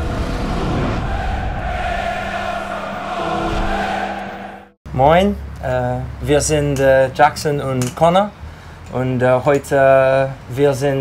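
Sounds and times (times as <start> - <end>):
loud dense rushing noise: 0.0 - 4.8
held music chord: 1.6 - 4.8.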